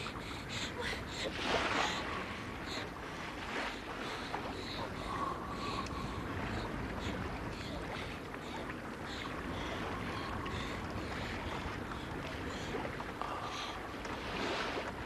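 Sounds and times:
sea noise: 0.0s - 15.0s
water splashing against hull: 0.0s - 15.0s
wind: 0.0s - 15.0s.

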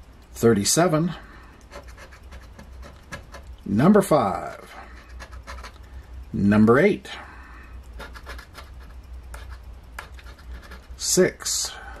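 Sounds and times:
steady low hum: 0.0s - 12.0s
coin scratching ticket: 1.7s - 3.5s, 4.3s - 5.8s, 8.0s - 11.3s.

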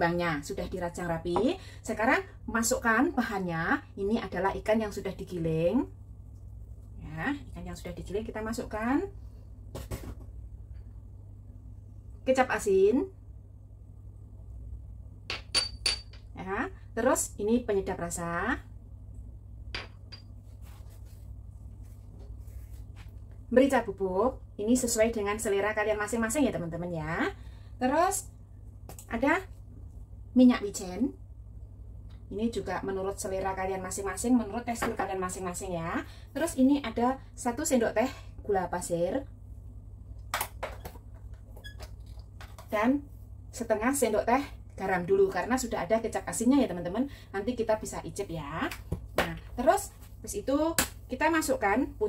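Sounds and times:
low steady hum: 0.0s - 52.0s
ceramic dish clinking: 15.3s - 16.2s.

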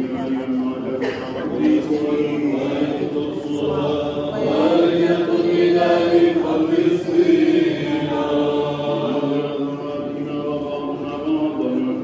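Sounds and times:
voices chanting a church hymn: 0.0s - 12.0s.

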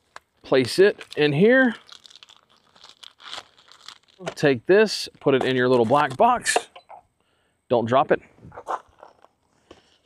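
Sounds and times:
plastic bag crinkling: 0.0s - 4.6s, 8.7s - 10.0s.

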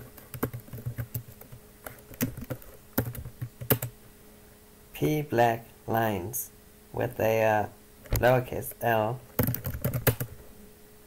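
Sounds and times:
keyboard typing: 0.0s - 3.9s, 9.4s - 10.3s.

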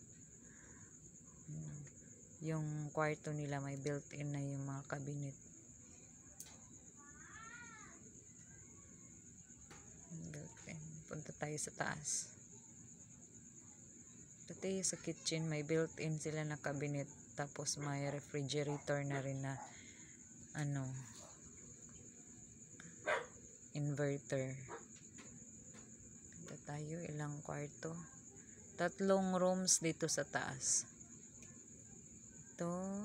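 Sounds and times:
faint high-pitched whine: 0.0s - 33.0s
high-pitched insect trill: 0.0s - 33.0s.

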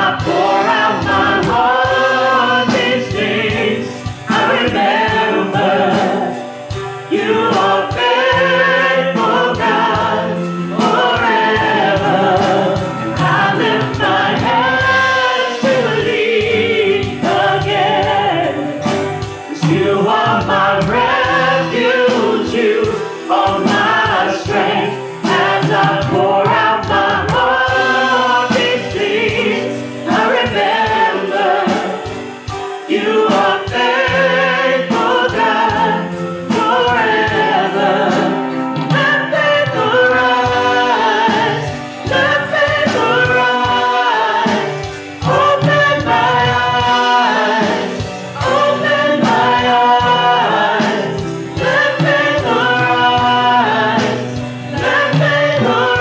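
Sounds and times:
live band with steady beat: 0.0s - 56.0s
women singing gospel song: 0.0s - 56.0s.

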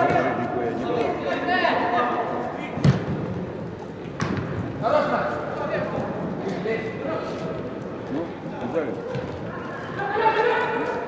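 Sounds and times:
people shouting in echoing hall: 9.1s - 11.0s.

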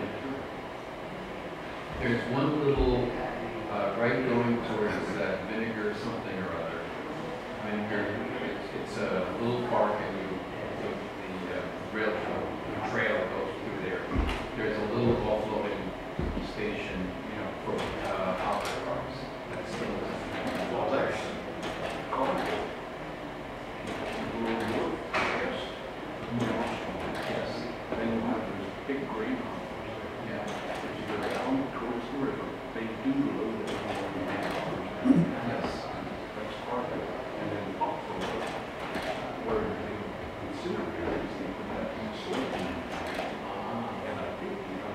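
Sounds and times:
people talking indistinctly: 1.2s - 44.9s
slide projector clicks: 42.3s - 43.4s.

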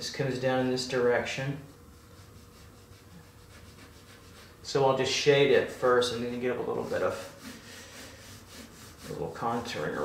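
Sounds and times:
coloured pencil scratching on paper: 1.9s - 4.6s, 5.7s - 10.0s.

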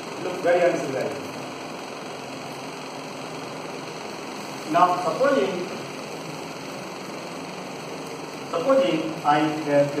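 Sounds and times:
fan and air cooler running: 0.0s - 10.0s.

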